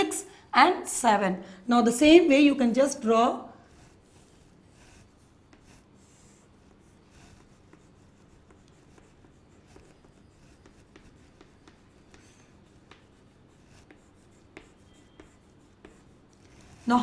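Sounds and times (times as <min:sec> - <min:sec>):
chalk scraping on chalkboard: 0:02.9 - 0:17.0.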